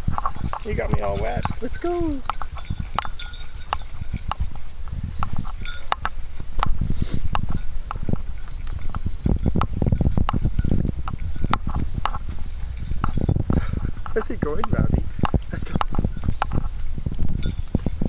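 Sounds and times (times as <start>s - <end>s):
footsteps on dirt trail: 0.0s - 18.0s.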